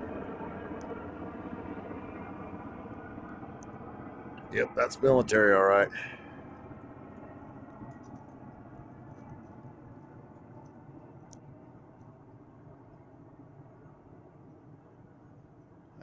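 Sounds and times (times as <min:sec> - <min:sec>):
distant helicopter flying over: 0:00.0 - 0:16.0.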